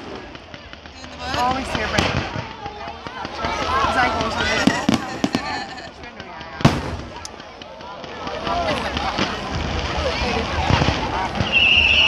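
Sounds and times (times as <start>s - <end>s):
fireworks bursting: 0.0s - 12.0s
loud bang: 6.6s - 7.3s.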